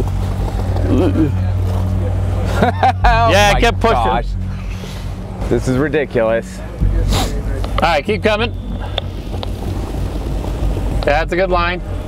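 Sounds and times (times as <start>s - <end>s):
pickup engine idling: 0.0s - 12.0s.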